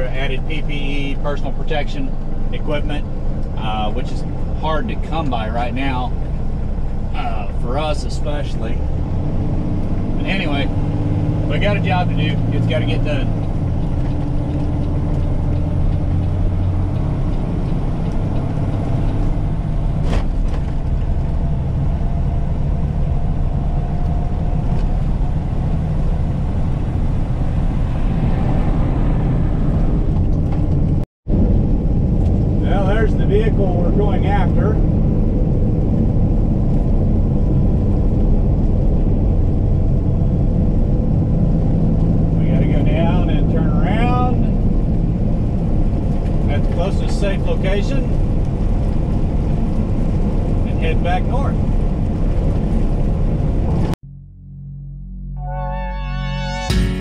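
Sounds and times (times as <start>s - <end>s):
road noise: 0.0s - 54.0s
truck diesel engine hum: 0.0s - 57.0s.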